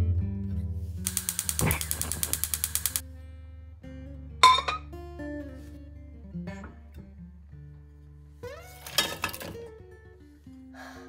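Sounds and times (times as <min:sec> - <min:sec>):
soft guitar music: 0:00.0 - 0:01.1, 0:03.0 - 0:11.0
rapid mechanical clicking: 0:01.1 - 0:03.0.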